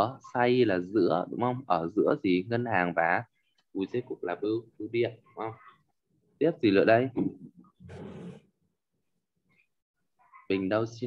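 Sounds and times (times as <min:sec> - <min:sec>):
man talking: 0:00.0 - 0:05.6
breathy noise into microphone: 0:07.7 - 0:08.6.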